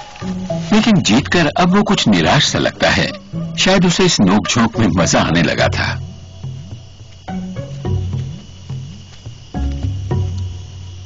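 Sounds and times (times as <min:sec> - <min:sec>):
background music with deep notes: 0:00.0 - 0:11.0
high insect trill: 0:00.0 - 0:11.0.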